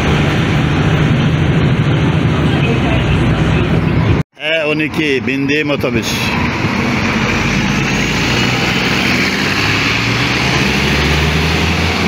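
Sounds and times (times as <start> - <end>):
bus engine droning: 0.0 - 12.0
road and traffic noise: 0.0 - 12.0.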